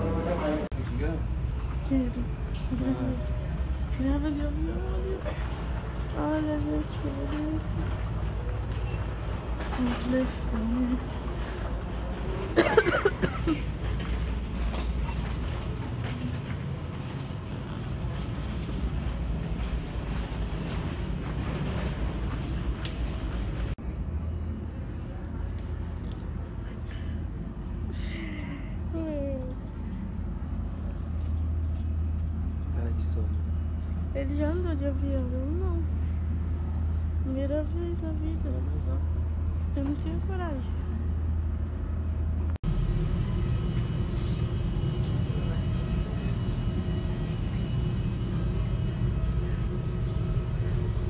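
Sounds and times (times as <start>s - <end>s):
steady hum: 0.0s - 51.0s
faint voices: 44.4s - 51.0s.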